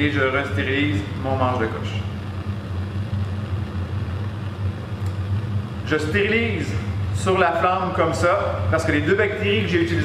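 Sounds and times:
burner flame hissing: 0.0s - 10.0s.

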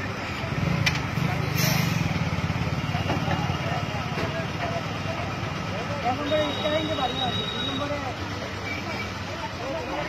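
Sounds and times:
crowd voices: 0.0s - 10.0s.

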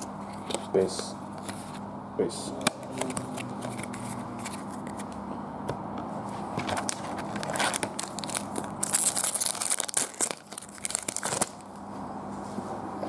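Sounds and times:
foil wrapper tearing and crinkling: 6.6s - 11.8s.

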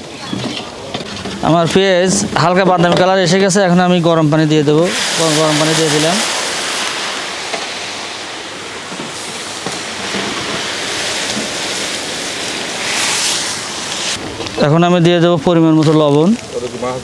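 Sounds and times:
hissing and sizzling: 0.0s - 17.0s
water pouring into pan: 3.3s - 14.2s.

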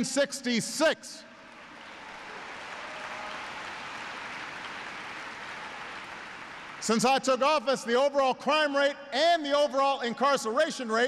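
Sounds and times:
large audience applauding: 1.5s - 7.0s.

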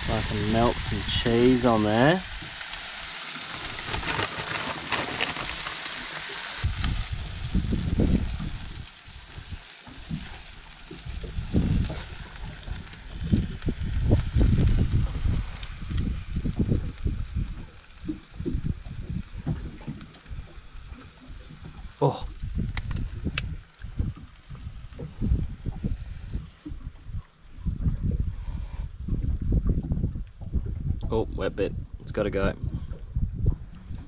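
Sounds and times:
fish sizzling on a griddle: 0.0s - 25.2s
wind buffeting microphone: 6.6s - 34.0s.

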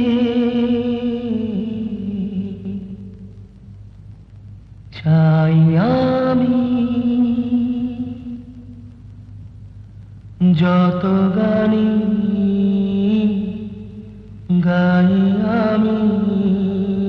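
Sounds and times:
chant-like voice holding notes: 10.4s - 17.0s.

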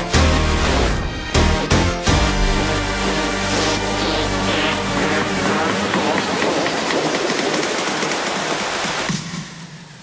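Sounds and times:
dense noisy electronic music: 0.0s - 10.0s.

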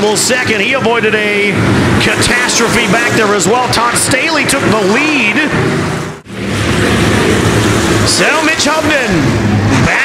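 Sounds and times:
stock car engines droning: 0.0s - 10.0s.

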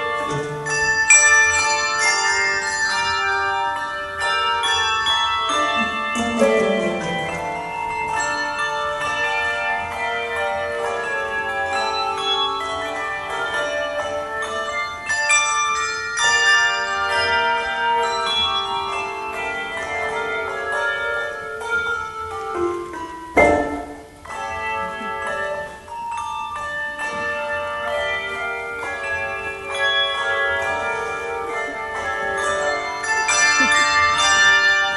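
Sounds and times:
handbell choir playing a tango: 0.0s - 34.9s.

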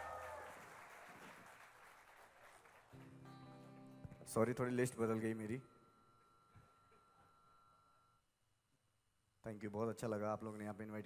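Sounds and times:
faint live band music: 3.0s - 5.7s.

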